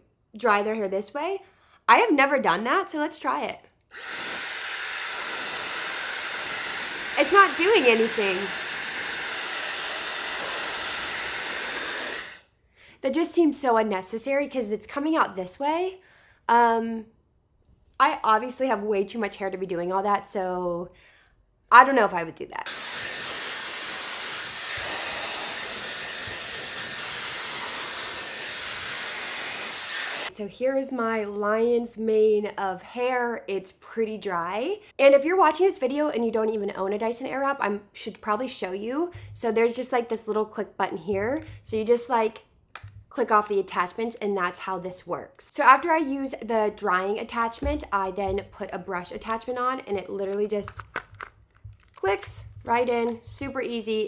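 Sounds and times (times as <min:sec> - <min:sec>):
hair dryer blowing air: 0:03.9 - 0:12.4, 0:22.7 - 0:30.3.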